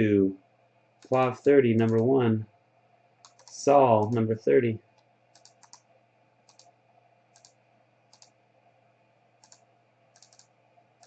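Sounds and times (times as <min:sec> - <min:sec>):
computer mouse clicks: 0:01.0 - 0:02.1, 0:03.2 - 0:04.2, 0:04.9 - 0:08.4, 0:09.4 - 0:10.6.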